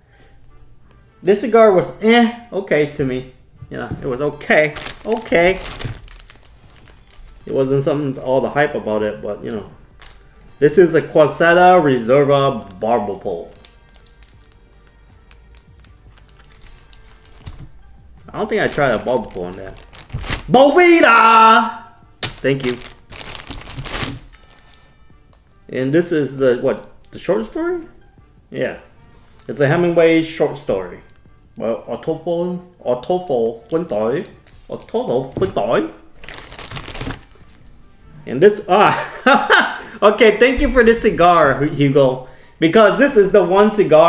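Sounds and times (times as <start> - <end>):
faint background music: 0.0 - 44.0
cellophane wrapper crinkling: 4.5 - 11.3, 12.5 - 21.3, 22.2 - 25.4, 29.2 - 29.6, 33.5 - 35.6, 36.2 - 37.7
plastic sleeve clicks: 12.7 - 17.7, 22.2 - 24.4.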